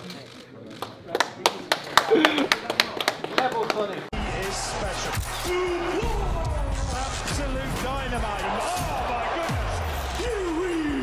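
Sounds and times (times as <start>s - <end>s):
people clapping: 0.7s - 6.2s.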